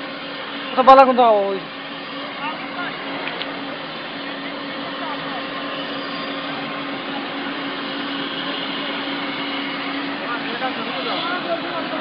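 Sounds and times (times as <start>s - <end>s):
machine whirring with low hum: 0.0s - 12.0s.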